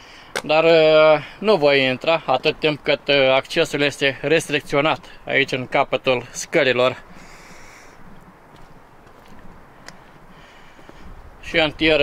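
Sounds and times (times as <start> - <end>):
footsteps on stone steps: 4.4 - 12.0
light wind on microphone: 6.9 - 12.0.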